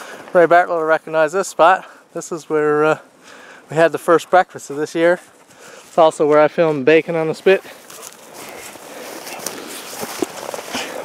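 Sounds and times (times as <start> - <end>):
footsteps crunching through brush and snow: 4.0 - 11.0.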